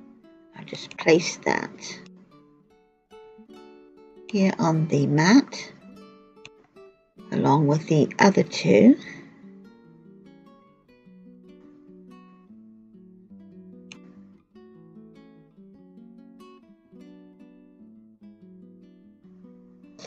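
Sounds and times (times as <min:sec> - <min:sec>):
acoustic guitar picking: 0:00.0 - 0:20.0.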